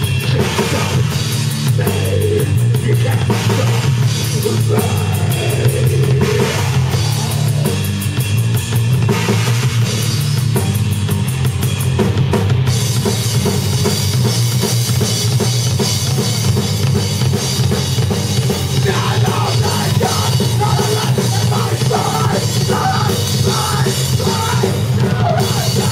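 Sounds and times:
fast drum strikes: 0.0 - 25.9
live band playing: 0.0 - 25.9.

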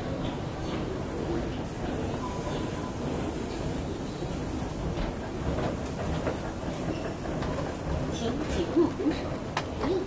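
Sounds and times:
metro train rumbling: 0.0 - 10.0.

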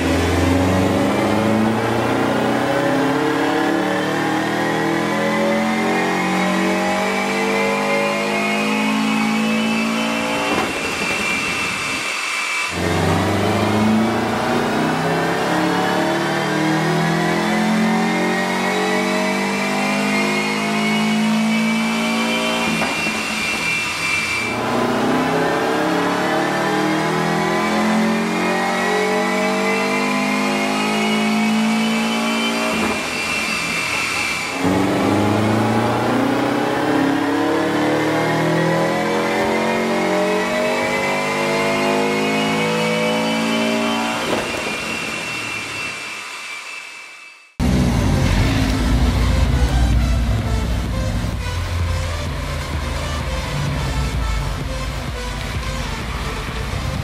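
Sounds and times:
car engine revving on dyno: 0.0 - 57.0.

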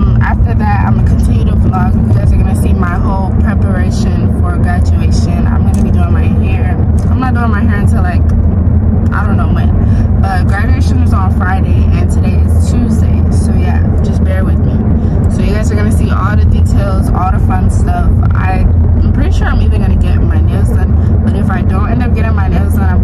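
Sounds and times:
woman talking: 0.0 - 8.3, 9.1 - 23.0
car road and engine rumble: 0.0 - 23.0.

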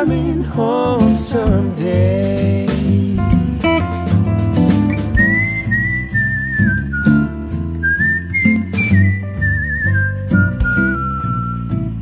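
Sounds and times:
acoustic guitar and band: 0.0 - 12.0
whistled melody: 4.9 - 12.0.

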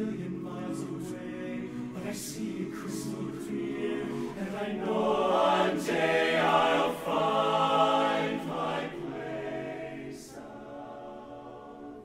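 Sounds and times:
men singing in harmony: 0.0 - 11.9.

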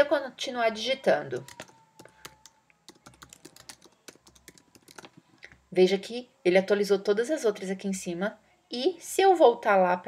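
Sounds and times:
typing on keyboard: 1.4 - 5.2.

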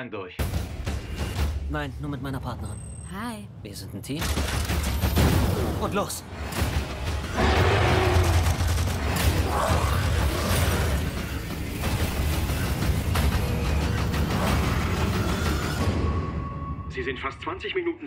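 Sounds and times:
trailer music: 0.4 - 18.0.

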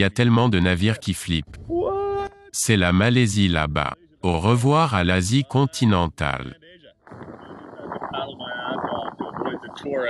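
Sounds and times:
choppy sea water: 7.0 - 10.0
wind on microphone: 7.0 - 10.0
man talking faintly: 7.4 - 10.0.

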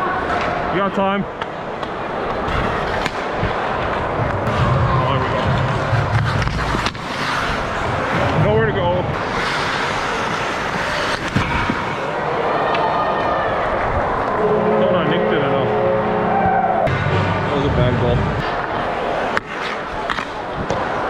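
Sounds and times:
skate blades scraping ice: 2.4 - 4.2, 5.4 - 12.2, 18.4 - 21.0
stick or puck clicks: 6.1 - 7.2, 11.0 - 11.8.

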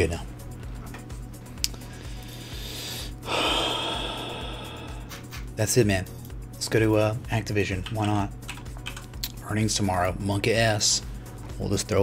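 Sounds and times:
background music with low beat: 0.0 - 12.0
man breathing into microphone: 1.8 - 5.3.

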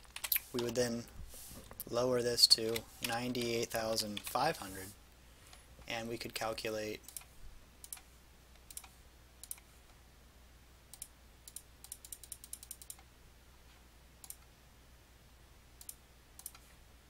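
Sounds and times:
computer mouse clicks: 0.0 - 0.8, 7.0 - 9.7, 10.9 - 13.1, 14.2 - 14.5, 15.8 - 16.7.

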